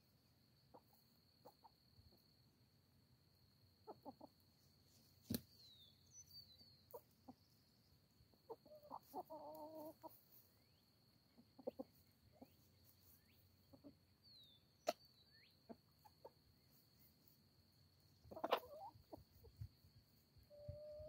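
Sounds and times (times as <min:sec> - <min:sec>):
hens clucking softly: 0:00.1 - 0:02.6, 0:03.3 - 0:21.0.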